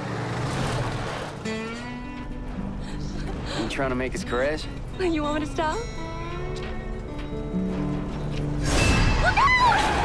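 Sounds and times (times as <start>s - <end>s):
strummed acoustic guitar: 0.5s - 8.7s.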